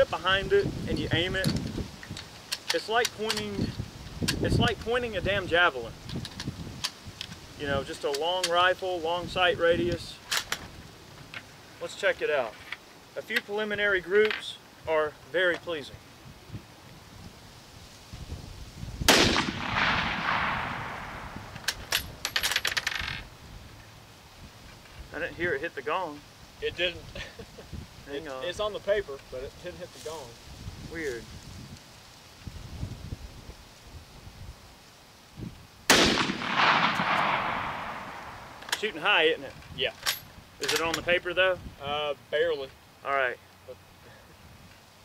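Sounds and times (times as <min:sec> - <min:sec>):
wind noise on microphone: 0:00.0 - 0:11.4, 0:15.9 - 0:25.6, 0:26.5 - 0:41.9
rifle shot with echo: 0:19.1 - 0:21.6, 0:35.9 - 0:38.6.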